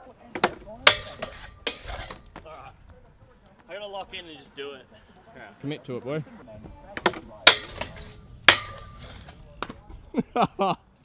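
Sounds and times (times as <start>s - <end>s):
scooter clanking on metal rail: 0.3s - 2.5s, 6.9s - 9.8s
scooter hitting wooden ramp: 0.4s - 2.5s, 7.0s - 9.8s.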